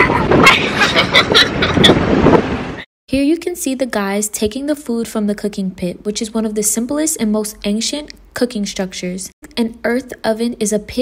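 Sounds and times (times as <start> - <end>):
wind rushing through car windows: 0.0 - 2.8
road noise: 0.0 - 2.9.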